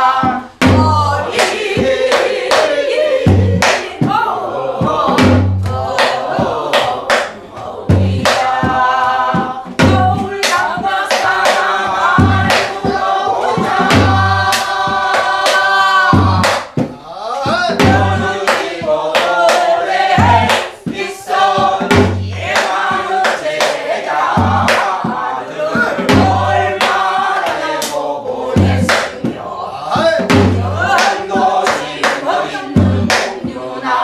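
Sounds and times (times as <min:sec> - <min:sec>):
deep drum strokes: 0:00.0 - 0:27.4
people singing along: 0:00.0 - 0:34.0
woman singing folk song: 0:08.0 - 0:11.3.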